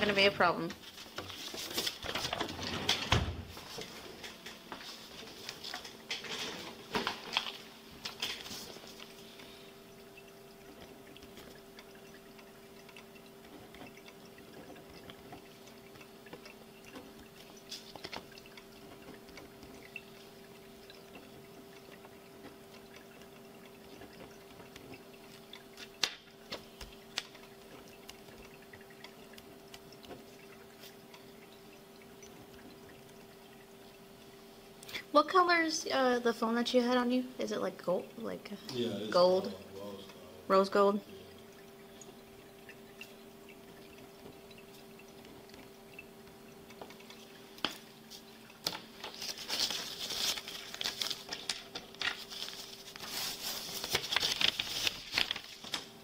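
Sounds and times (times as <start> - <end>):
electrical hum: 0.0 - 56.0.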